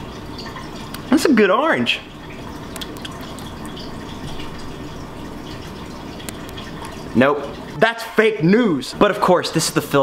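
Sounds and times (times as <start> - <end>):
wet chewing: 2.6 - 4.6.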